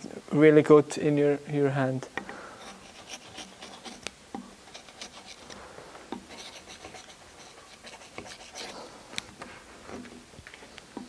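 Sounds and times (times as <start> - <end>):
gouge scratching wood: 2.6 - 10.2.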